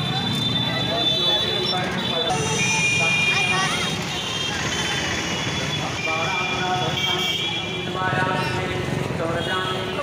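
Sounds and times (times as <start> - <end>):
children chattering: 0.0 - 5.0
road traffic passing: 0.0 - 10.0.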